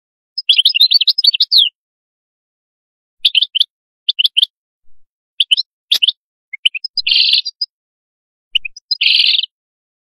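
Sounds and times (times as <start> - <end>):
bird twittering chirps: 0.4 - 1.8, 3.2 - 4.5, 5.4 - 7.8, 8.5 - 9.6.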